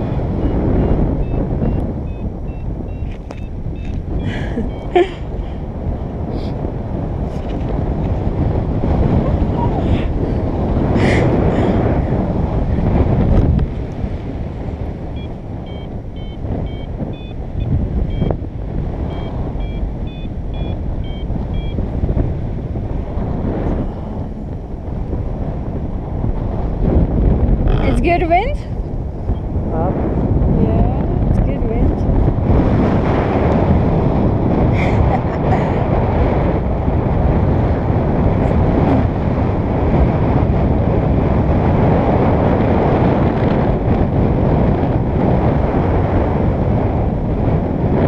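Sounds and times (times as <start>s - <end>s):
wind rushing over microphone: 0.0s - 48.0s.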